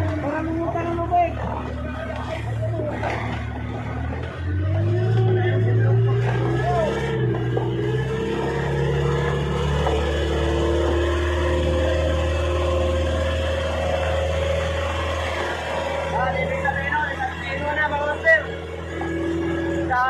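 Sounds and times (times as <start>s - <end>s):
boat engine running: 0.0s - 20.0s.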